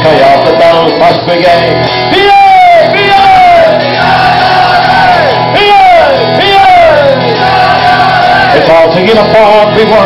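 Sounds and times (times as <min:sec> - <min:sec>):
bass guitar: 0:00.0 - 0:10.0
men singing: 0:06.7 - 0:08.7.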